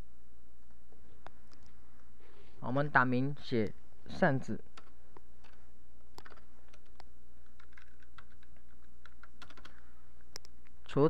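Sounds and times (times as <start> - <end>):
steady low hum: 0.0 - 11.0
keyboard typing clicks: 4.8 - 10.6.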